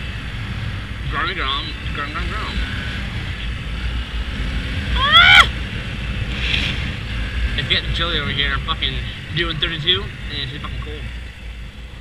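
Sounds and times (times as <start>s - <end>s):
small motorcycle riding: 0.0s - 12.0s
wind rumbling on microphone: 0.0s - 12.0s.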